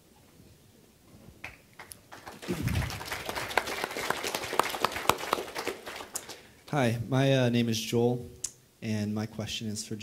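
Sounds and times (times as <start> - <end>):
audience applauding: 1.4 - 6.8.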